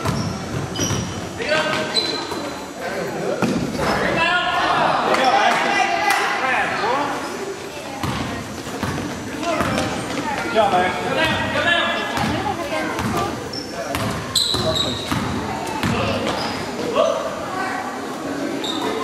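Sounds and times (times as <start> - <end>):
basketball bouncing on court: 0.0 - 1.8, 8.0 - 10.5, 12.1 - 16.5
high squeak: 1.9 - 2.4, 13.5 - 15.1.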